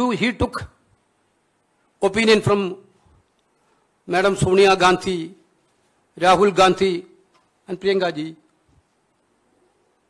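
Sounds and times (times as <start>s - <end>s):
man speaking into a microphone: 0.0s - 0.8s, 2.0s - 3.0s, 4.0s - 5.5s, 6.1s - 8.5s.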